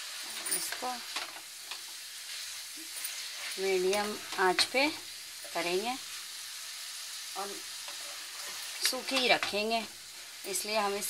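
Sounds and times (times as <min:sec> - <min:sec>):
food sizzling in a pan: 0:00.0 - 0:11.0
spatula scraping pan: 0:07.8 - 0:09.6.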